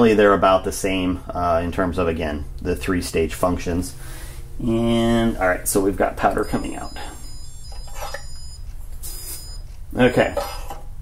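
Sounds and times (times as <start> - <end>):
powder dispenser buzzing: 6.2 - 10.7.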